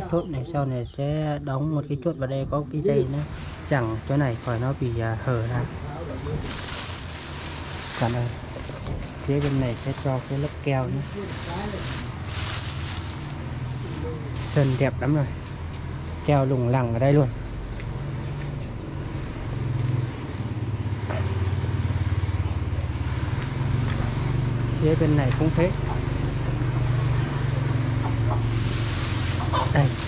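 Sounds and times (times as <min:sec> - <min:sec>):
engine running: 0:02.5 - 0:30.0
plastic sheeting rustling: 0:06.2 - 0:14.9, 0:28.4 - 0:30.0.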